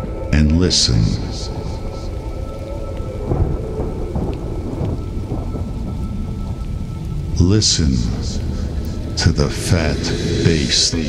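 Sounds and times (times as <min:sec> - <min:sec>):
spoken vocal sample: 0:00.3 - 0:01.8, 0:07.4 - 0:11.0.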